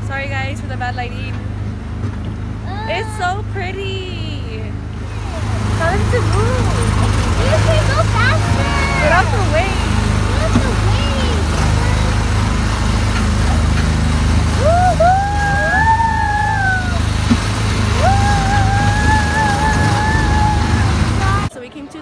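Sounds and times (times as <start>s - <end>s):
small engine humming: 2.6s - 21.5s.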